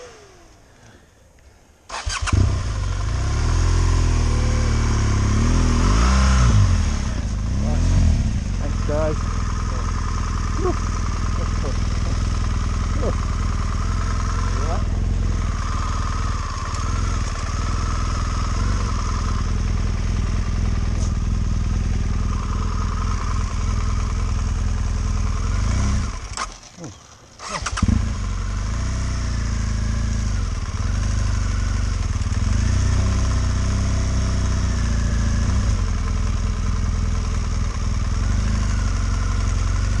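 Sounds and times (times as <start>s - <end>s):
motorcycle engine at low revs: 0.0s - 40.0s.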